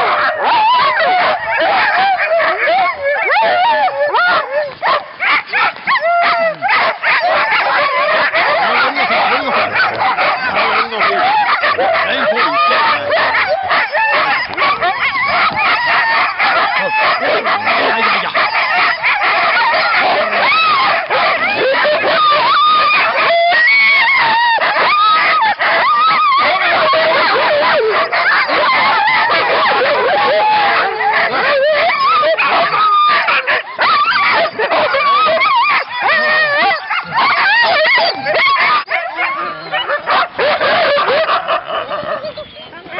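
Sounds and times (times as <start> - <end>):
sled dogs barking and yelping: 0.0 - 42.9.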